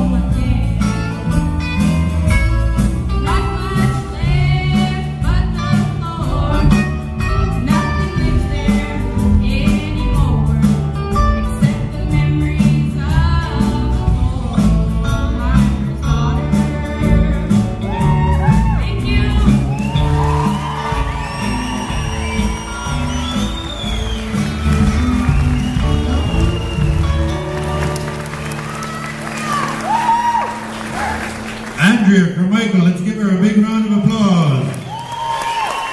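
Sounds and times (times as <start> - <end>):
live rock band playing: 0.0 - 34.6
audience cheering and whooping: 17.8 - 31.9, 34.7 - 35.9.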